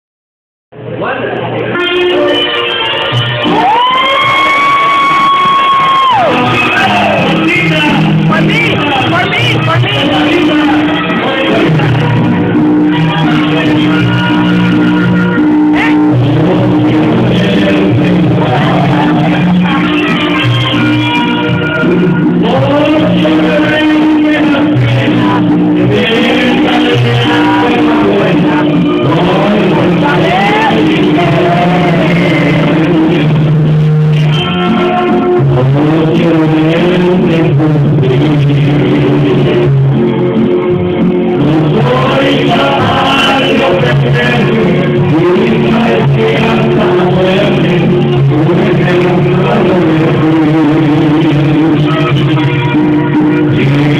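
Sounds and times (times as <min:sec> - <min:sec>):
karaoke backing music: 0:00.8 - 0:53.9
person singing long high note: 0:01.8 - 0:33.5, 0:41.2 - 0:53.9.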